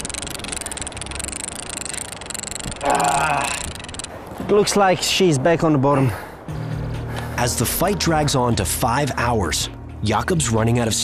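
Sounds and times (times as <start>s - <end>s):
fishing reel ticking: 0.0s - 4.2s.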